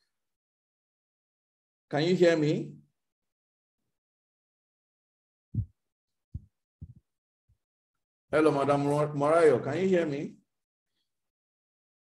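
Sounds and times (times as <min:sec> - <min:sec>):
dull low thumps: 0:05.6 - 0:05.8.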